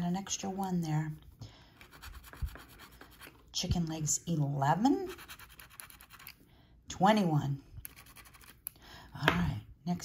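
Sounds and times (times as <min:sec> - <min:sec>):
scratching lottery ticket: 0:05.0 - 0:06.3, 0:07.9 - 0:08.6.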